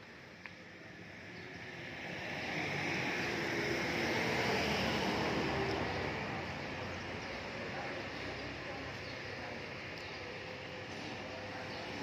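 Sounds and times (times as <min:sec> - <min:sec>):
vehicle passing: 0:01.8 - 0:08.7.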